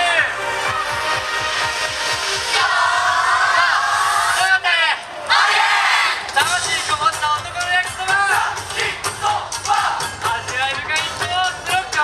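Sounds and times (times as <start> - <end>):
group shouting in unison: 5.3 - 6.2.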